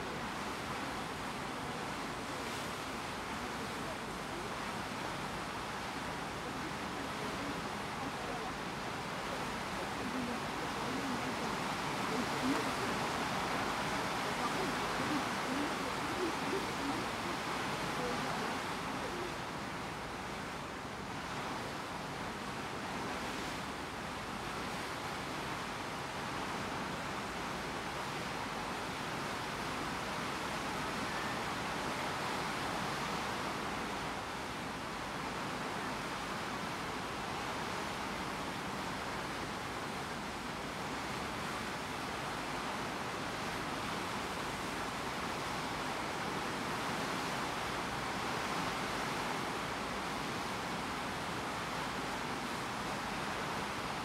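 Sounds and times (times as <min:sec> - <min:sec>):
wind and sea water rushing: 0:00.0 - 0:54.0.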